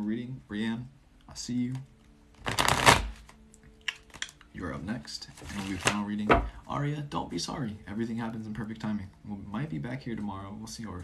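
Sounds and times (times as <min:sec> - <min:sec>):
cards riffle-shuffled: 0:02.4 - 0:04.4, 0:05.3 - 0:06.1.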